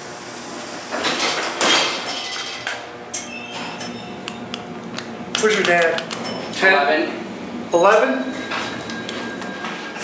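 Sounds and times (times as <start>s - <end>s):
elevator doors sliding shut: 0.3s - 4.0s.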